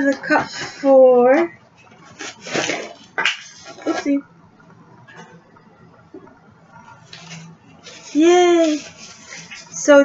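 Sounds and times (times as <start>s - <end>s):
quiet room noise: 0.0s - 10.0s.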